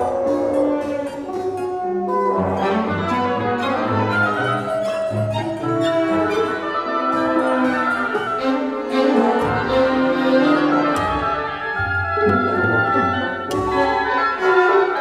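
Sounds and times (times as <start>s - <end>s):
bassoon: 0.0s - 15.0s
bowed strings: 0.0s - 15.0s.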